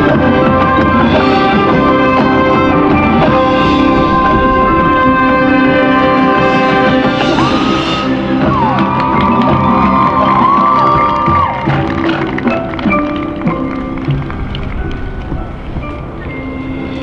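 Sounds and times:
marching band playing: 0:00.0 - 0:17.0.

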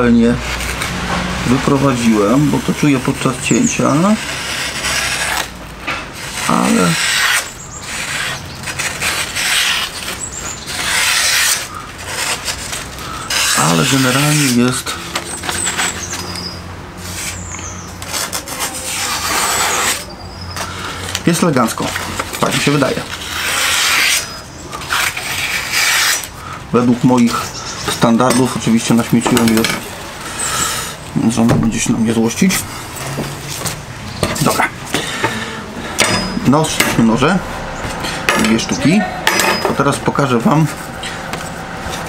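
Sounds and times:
knife slicing paper: 0:02.8 - 0:05.6, 0:06.2 - 0:26.5.

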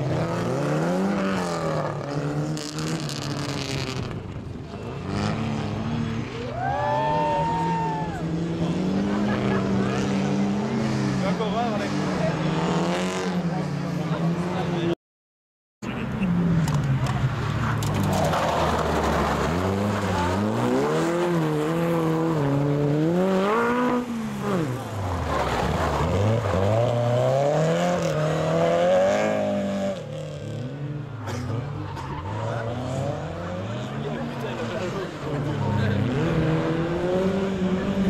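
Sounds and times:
rally car engines revving: 0:00.0 - 0:15.0, 0:15.8 - 0:38.0.

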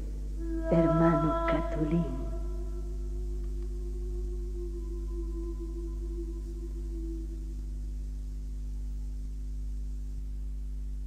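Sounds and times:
low drone of held tones: 0:00.0 - 0:11.0
low hum: 0:00.0 - 0:11.0.

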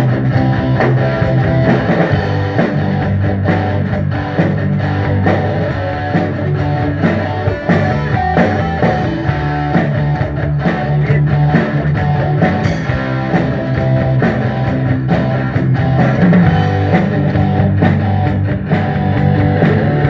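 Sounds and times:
bass guitar: 0:00.0 - 0:20.0
drum kit steady beat: 0:00.0 - 0:20.0
electric guitar: 0:00.0 - 0:20.0.

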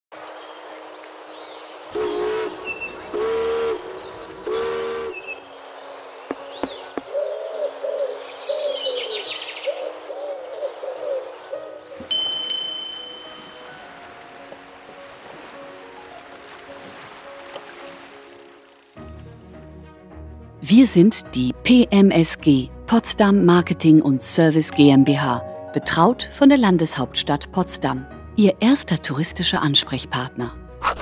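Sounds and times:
warbling chirping bird calls: 0:01.9 - 0:12.0
short horn blasts: 0:02.0 - 0:05.4.

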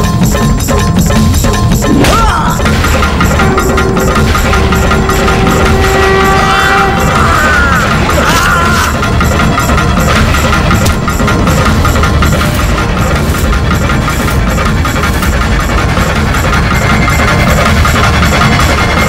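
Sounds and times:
dramatic orchestral score: 0:00.0 - 0:19.0.

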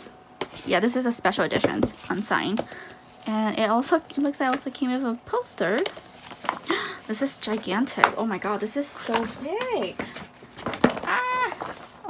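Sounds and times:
paper rustling and crinkling: 0:00.4 - 0:12.0.

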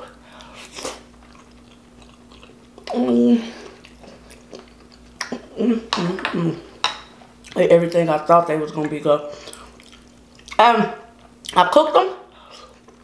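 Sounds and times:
chewing rice: 0:00.4 - 0:03.0, 0:03.6 - 0:05.5, 0:09.4 - 0:10.6
closed-mouth hums: 0:02.1 - 0:06.8.

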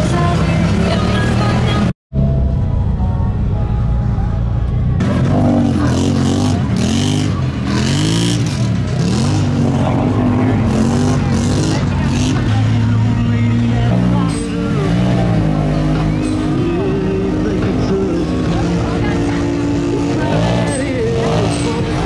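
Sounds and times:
atv engine idling and revving: 0:00.0 - 0:22.0.

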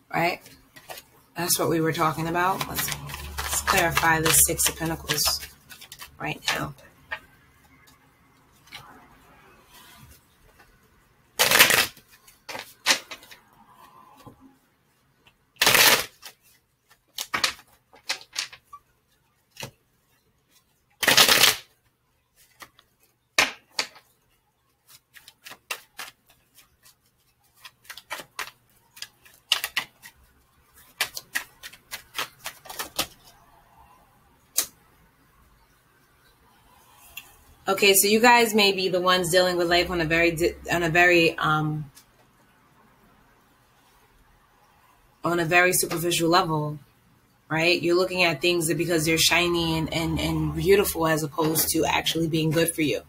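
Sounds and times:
cards being shuffled: 0:00.7 - 0:07.2, 0:11.4 - 0:13.5, 0:15.6 - 0:19.8, 0:20.5 - 0:24.2, 0:24.8 - 0:33.3.

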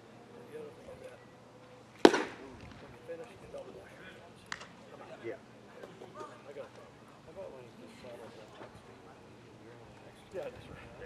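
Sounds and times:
faint voices: 0:00.0 - 0:11.0
baseball smacking into mitt: 0:02.0 - 0:02.8, 0:04.5 - 0:04.7.

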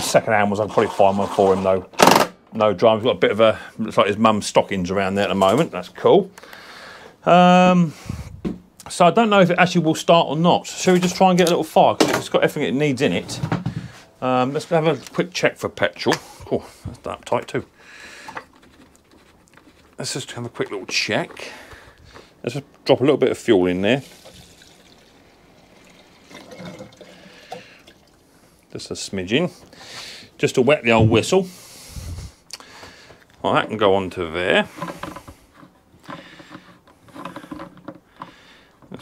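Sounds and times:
plastic fuel cap scraping: 0:18.2 - 0:22.4, 0:34.6 - 0:39.0.

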